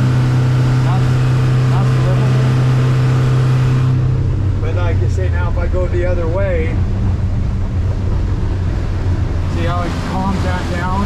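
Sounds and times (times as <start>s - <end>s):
outboard motor droning: 0.0s - 11.0s
water rushing along hull: 0.0s - 11.0s.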